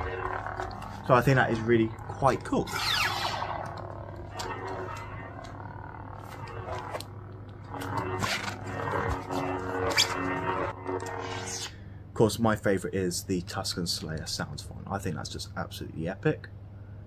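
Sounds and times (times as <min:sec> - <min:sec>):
lightsaber blade retracting: 0:00.0 - 0:11.7
lightsaber sharp hits: 0:00.0 - 0:11.7
lightsaber electronic hum: 0:00.0 - 0:15.4.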